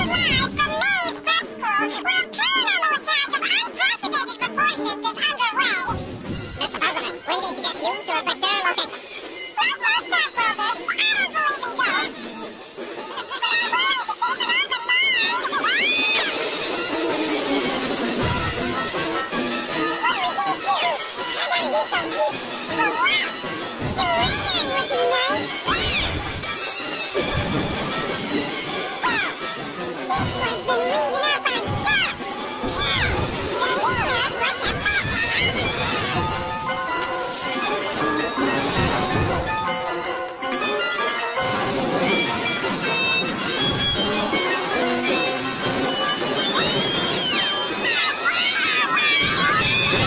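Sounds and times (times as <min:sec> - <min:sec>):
background music: 0:00.0 - 0:50.0.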